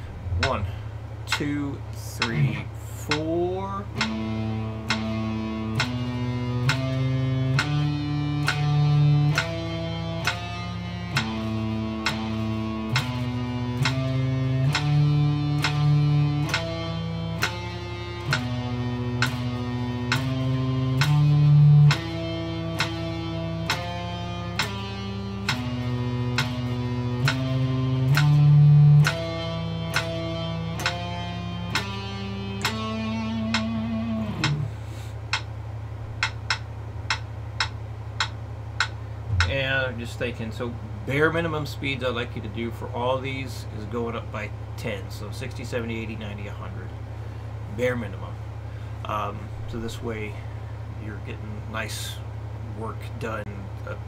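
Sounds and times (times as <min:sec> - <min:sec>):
electric guitar single picked notes: 0:00.0 - 0:35.4, 0:36.2 - 0:44.5
metronome clicks: 0:00.3 - 0:35.5, 0:36.2 - 0:39.9.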